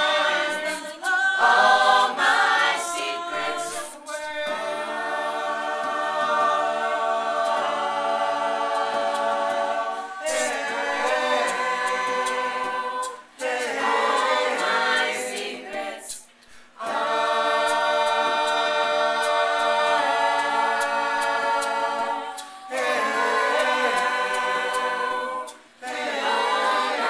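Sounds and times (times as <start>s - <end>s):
a cappella group singing: 0.0s - 27.0s.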